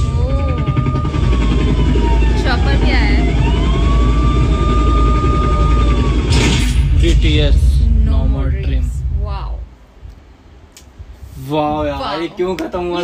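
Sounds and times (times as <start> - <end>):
siren-like wail: 0.0 - 7.2
deep steady rumble: 0.0 - 13.0.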